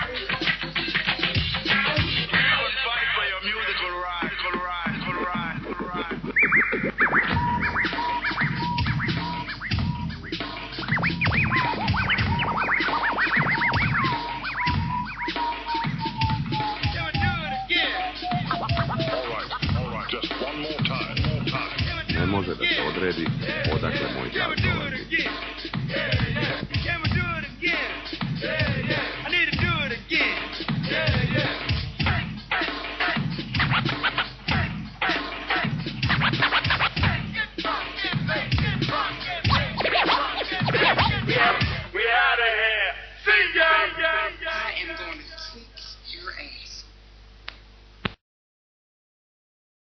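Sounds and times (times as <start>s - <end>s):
hip hop drum beat and bass: 0.0s - 42.0s
turntable scratching: 0.0s - 42.0s.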